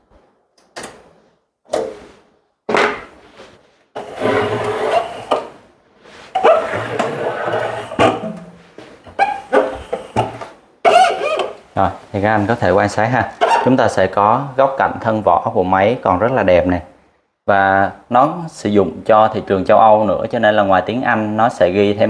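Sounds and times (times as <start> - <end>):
case scraping across wood: 4.0 - 5.5, 6.3 - 8.3.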